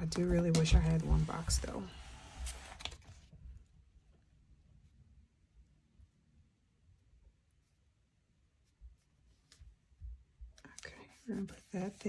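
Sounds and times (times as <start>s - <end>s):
soft clicks and bumps of paper: 2.4s - 3.4s.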